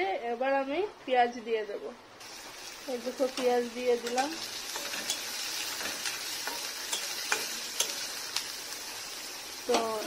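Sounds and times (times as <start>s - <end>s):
onions sizzling in hot oil: 2.2s - 10.0s.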